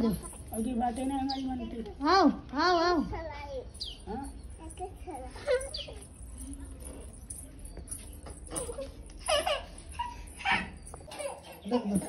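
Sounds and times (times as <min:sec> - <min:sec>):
children calling and squealing: 0:01.3 - 0:12.0.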